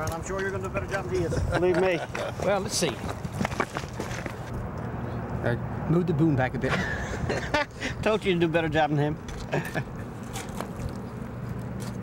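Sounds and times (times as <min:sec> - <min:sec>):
footsteps on loose stones: 0:02.8 - 0:04.6.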